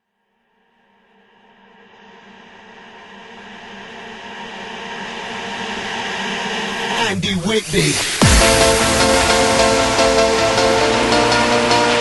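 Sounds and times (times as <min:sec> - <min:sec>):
synthesizer drone: 0:00.9 - 0:12.0
hissing noise wash: 0:01.4 - 0:12.0
electronic dance track: 0:03.4 - 0:12.0.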